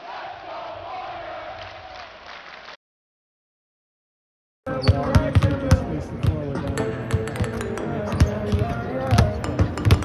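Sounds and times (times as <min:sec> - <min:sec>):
background music: 0:04.7 - 0:10.0
basketballs bouncing on hardwood: 0:04.8 - 0:10.0.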